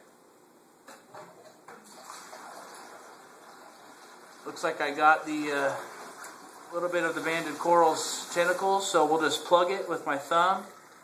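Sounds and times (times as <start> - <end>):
water running through hose into bucket: 1.7 - 11.0.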